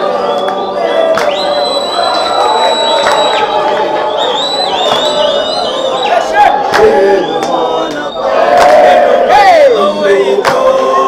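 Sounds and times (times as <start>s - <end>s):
crowd chanting a song: 0.0s - 11.0s.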